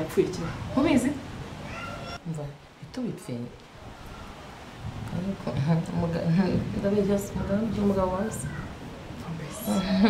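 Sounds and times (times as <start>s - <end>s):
women speaking: 0.0s - 1.2s, 2.2s - 3.6s, 5.1s - 8.6s, 9.2s - 10.0s.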